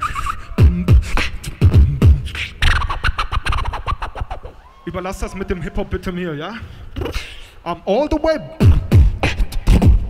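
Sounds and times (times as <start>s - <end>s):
beatboxing mouth clicks and scratches: 0.0s - 4.5s, 7.0s - 7.4s, 8.6s - 10.0s.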